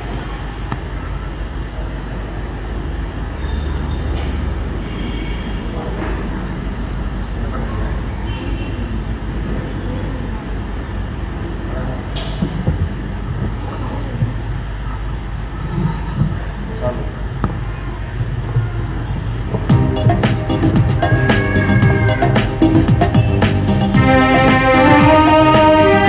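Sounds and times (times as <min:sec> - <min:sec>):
indistinct voices: 0:19.7 - 0:26.0.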